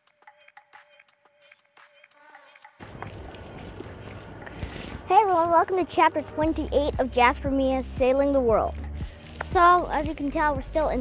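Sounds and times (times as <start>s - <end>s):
wind on microphone: 2.8s - 5.7s.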